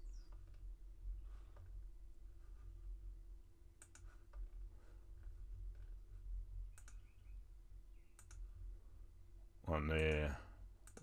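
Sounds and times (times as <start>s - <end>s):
faint low hum: 0.0s - 11.0s
computer mouse clicks: 3.8s - 4.5s, 6.7s - 7.1s, 8.1s - 8.5s.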